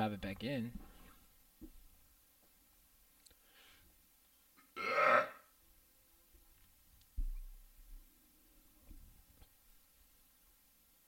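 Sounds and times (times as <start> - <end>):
person burping: 4.6 - 5.5.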